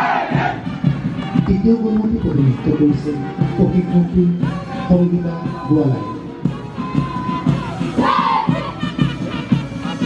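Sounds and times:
loud shouted cry: 0.0s - 0.6s, 6.8s - 8.8s
parade music with held notes: 0.0s - 10.0s.

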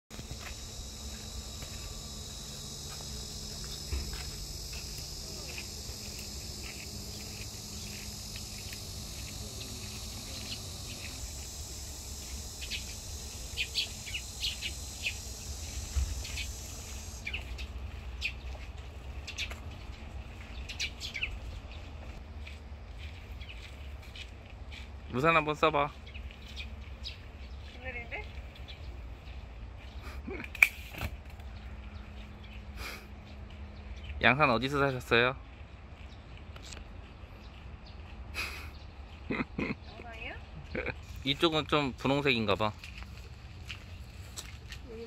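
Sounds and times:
birds chirping: 0.1s - 24.3s, 25.1s - 30.2s, 31.4s - 45.0s
insects droning: 0.1s - 24.4s, 25.0s - 29.4s, 39.3s - 45.0s.

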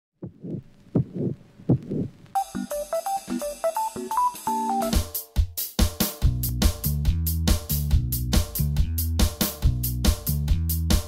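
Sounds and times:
heartbeat double thumps: 0.2s - 2.2s.

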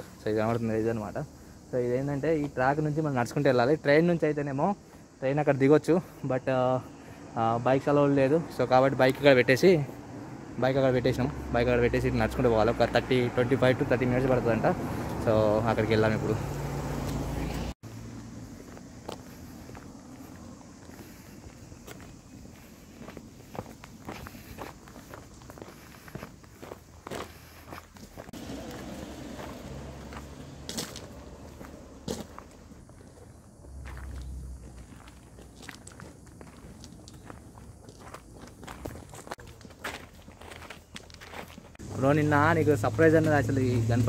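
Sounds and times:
footsteps on gravel: 17.0s - 42.2s.

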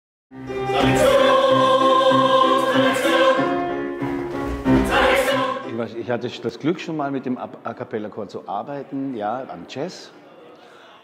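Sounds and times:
choir singing: 0.4s - 6.1s.

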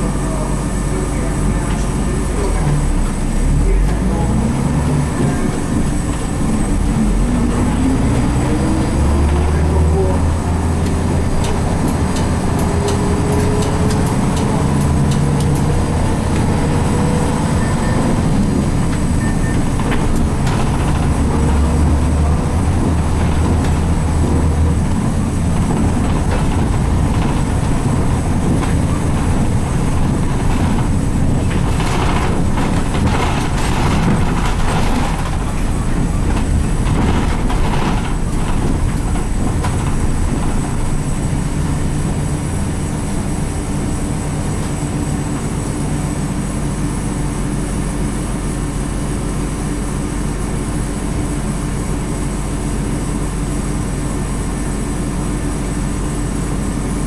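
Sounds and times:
diesel bus engine pulling: 0.0s - 57.0s
road noise: 0.0s - 57.0s
rattling: 0.9s - 43.6s.

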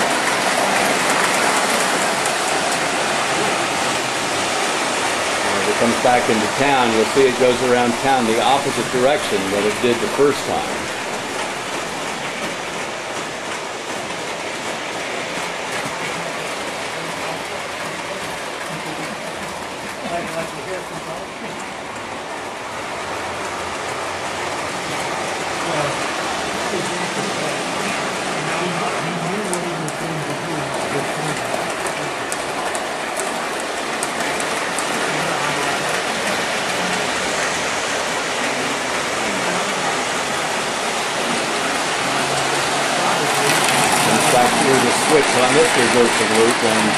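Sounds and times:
model train rolling rumble: 0.0s - 46.9s.

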